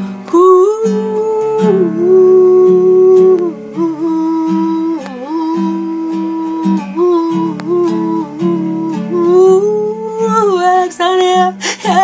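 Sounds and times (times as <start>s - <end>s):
guitar accompaniment: 0.0s - 12.0s
woman humming a melody: 0.3s - 12.0s.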